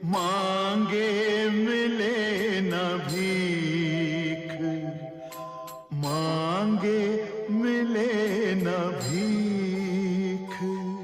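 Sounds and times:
devotional song singing: 0.0s - 11.0s
steady accompanying tones: 0.0s - 11.0s.

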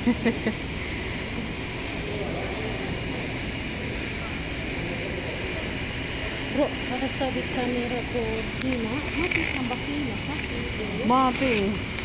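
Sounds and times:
mechanical hum and hiss: 0.0s - 12.0s.

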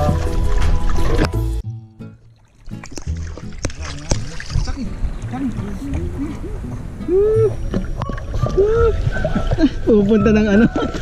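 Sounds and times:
water sloshing and splashing: 0.0s - 1.6s, 2.2s - 11.0s
people calling ooh: 5.9s - 9.9s.

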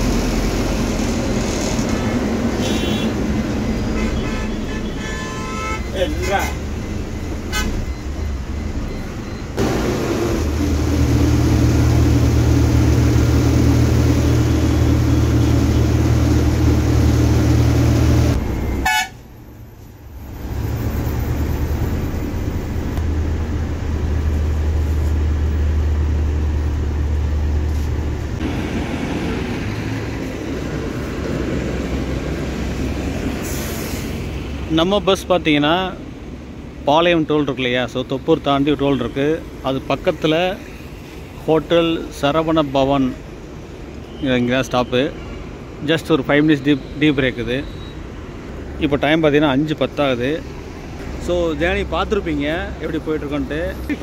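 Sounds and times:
bus engine and road noise: 0.0s - 54.0s
vehicle horns: 1.9s - 6.7s, 7.5s - 7.9s, 18.7s - 19.3s.

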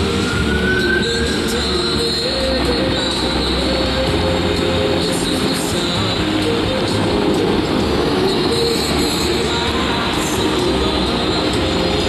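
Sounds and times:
fountain water jets spraying: 0.0s - 12.0s.

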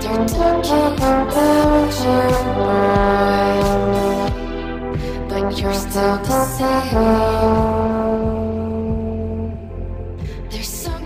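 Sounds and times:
trombone holding long note: 0.0s - 10.2s
low drum beat: 0.0s - 10.5s
synthwave backing track: 0.0s - 11.0s.

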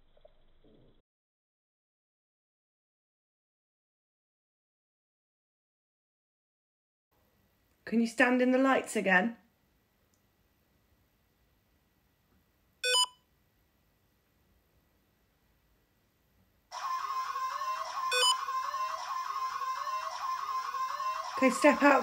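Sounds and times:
short electronic beep: 12.8s - 13.2s, 18.1s - 18.4s.

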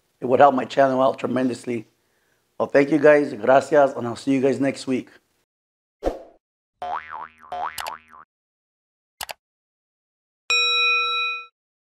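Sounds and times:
cartoon boing: 6.8s - 8.2s
sharp click: 9.2s - 9.4s.

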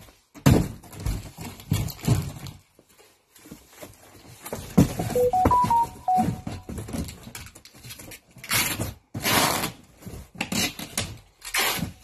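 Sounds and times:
cardboard boxes knocking: 4.4s - 7.2s
short electronic beeps: 5.1s - 6.7s.

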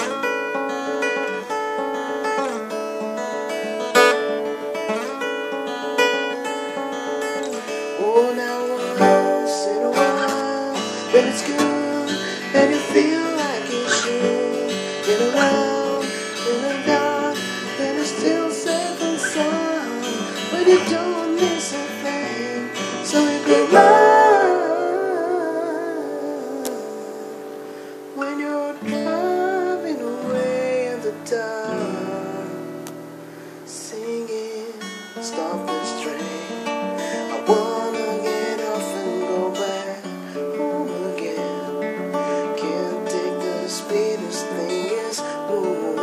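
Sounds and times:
acoustic guitar strummed: 0.0s - 46.0s
man singing: 7.8s - 32.9s, 33.7s - 46.0s.

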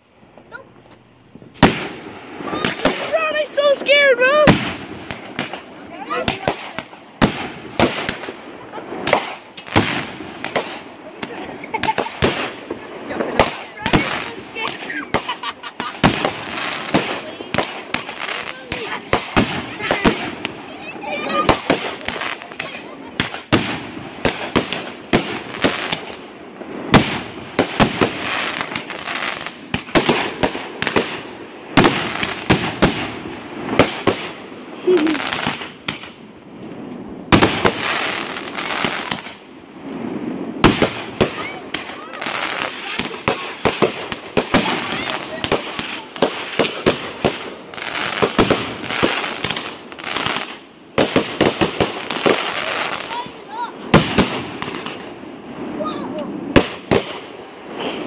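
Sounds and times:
crackling firework bursts: 0.0s - 58.0s
loud firework reports: 0.0s - 58.0s
firework launch bangs: 1.4s - 53.3s, 53.9s - 58.0s.

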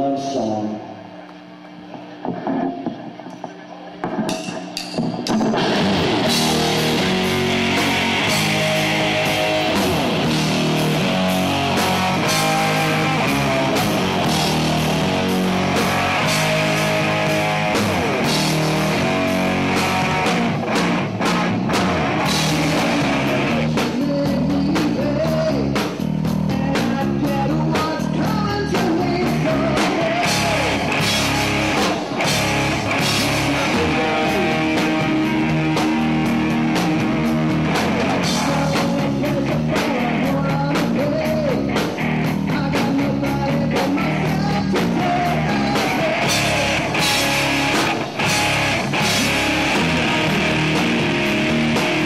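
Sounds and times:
distorted electric guitar: 0.0s - 52.0s
bass guitar: 1.8s - 52.0s
drum kit: 1.8s - 52.0s.

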